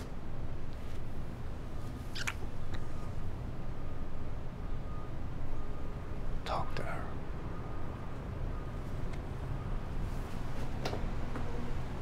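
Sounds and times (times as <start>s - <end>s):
person whispering: 6.4s - 7.2s.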